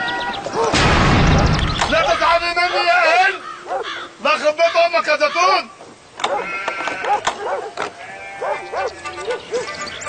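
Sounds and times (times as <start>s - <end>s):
farm animals bleating: 6.2s - 10.0s.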